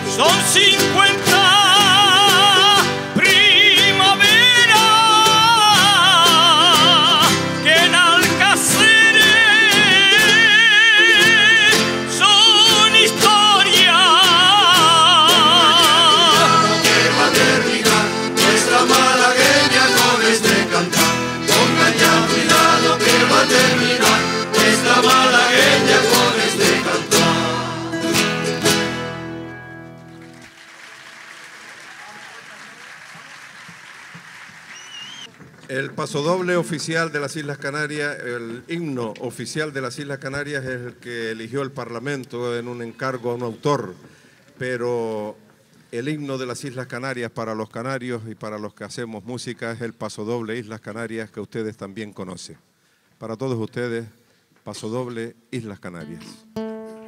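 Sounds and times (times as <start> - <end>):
person singing with vibrato: 0.0 - 28.6
strummed guitars: 0.0 - 30.6, 56.0 - 57.0
folk string band dance tune: 0.0 - 30.7.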